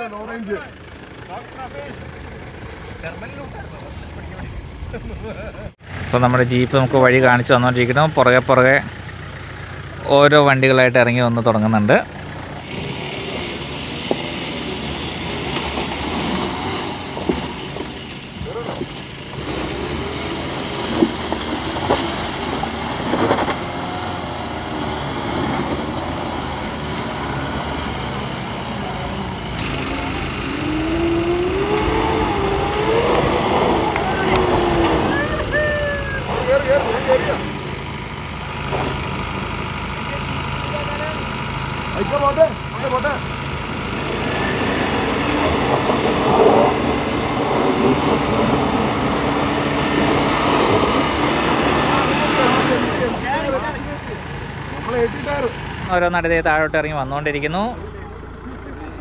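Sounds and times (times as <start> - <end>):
off-road engines under load: 0.0 - 59.0
people calling out: 30.1 - 37.6.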